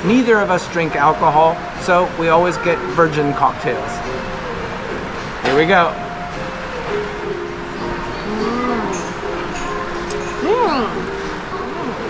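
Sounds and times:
faint background music: 0.0s - 12.0s
restaurant background noise: 0.0s - 12.0s.

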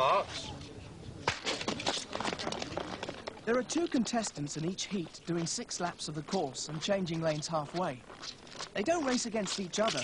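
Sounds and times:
skate blades scraping ice: 1.2s - 4.3s, 6.3s - 10.0s.

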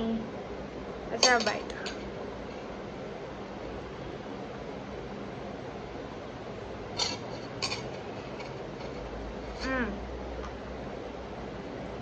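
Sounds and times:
air conditioner hissing: 0.0s - 12.0s.

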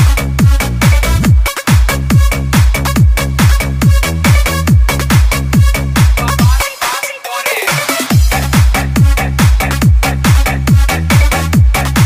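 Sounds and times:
pounding kick drum: 0.0s - 6.7s, 8.1s - 12.0s
electronic dance music: 0.0s - 12.0s.

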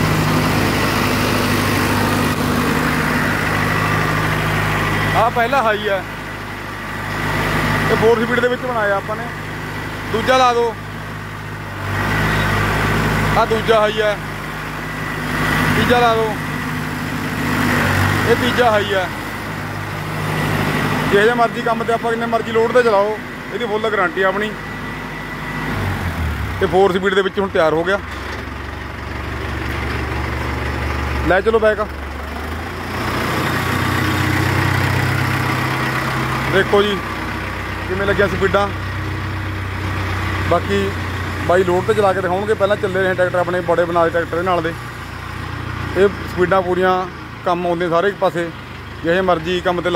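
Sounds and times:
tractor diesel engine running: 0.0s - 49.9s.

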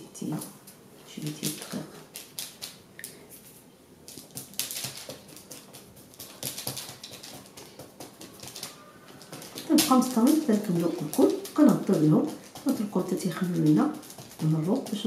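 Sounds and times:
parchment paper crinkling and tapping: 0.4s - 15.0s.

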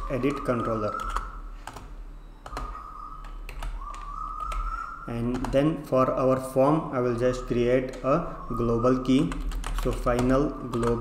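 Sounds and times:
computer keyboard keys clicking: 0.3s - 4.7s, 5.3s - 5.6s, 9.3s - 11.0s.

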